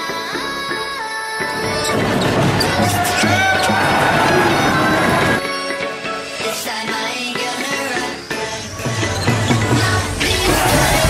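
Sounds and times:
arena music: 0.0 - 11.0
crowd noise: 1.5 - 5.4, 8.4 - 11.0.

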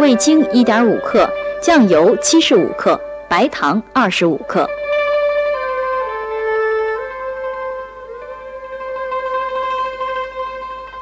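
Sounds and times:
slow wind instrument melody: 0.0 - 11.0.

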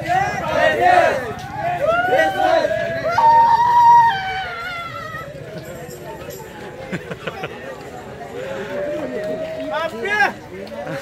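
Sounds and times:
carollers singing: 0.0 - 3.0.

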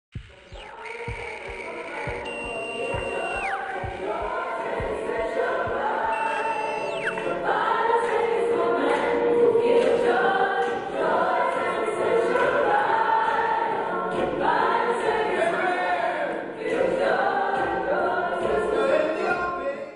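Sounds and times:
choir singing sustained notes: 0.2 - 18.4.

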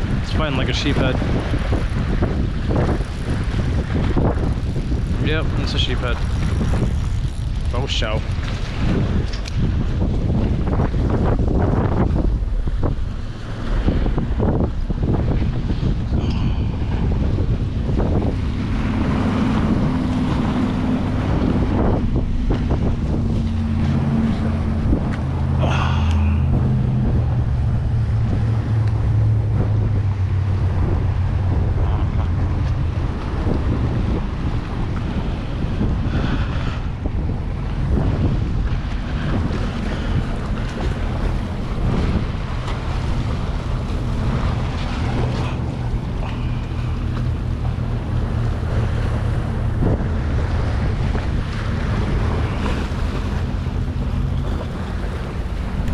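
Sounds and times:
low steady hum: 0.0 - 55.9
water splashing against rocks: 0.0 - 55.9
wind buffeting microphone: 0.0 - 55.9.

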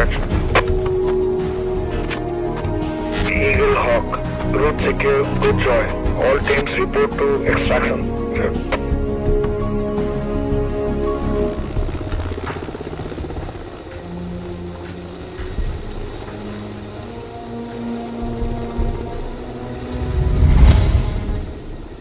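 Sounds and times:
helicopter rotor chop: 0.0 - 2.3, 3.1 - 7.0, 9.3 - 22.0
cinematic music: 0.0 - 22.0.

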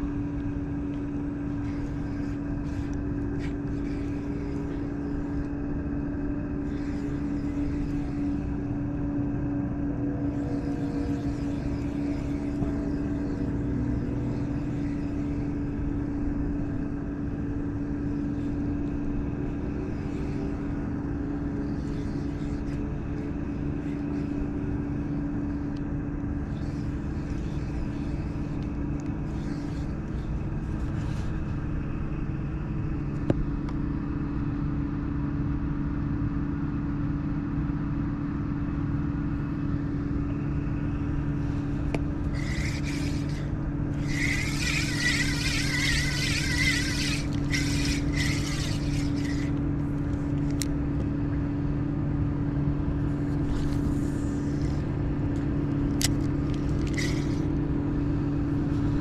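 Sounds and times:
spinning reel gears whirring: 0.0 - 33.2, 39.5 - 51.0, 53.0 - 59.0
low mechanical hum: 0.0 - 59.0.

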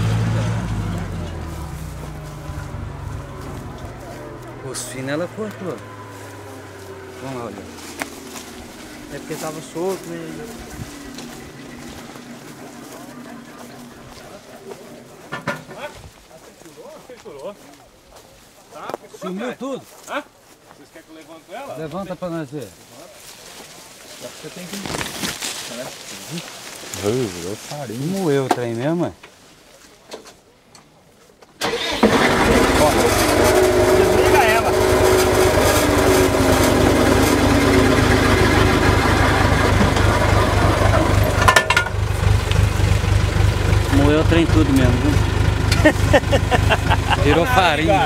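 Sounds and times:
distant shredder low hum: 0.0 - 15.3, 32.6 - 48.0
tractor and flail mulcher running: 0.0 - 15.9, 31.6 - 48.0
voices: 0.0 - 48.0.

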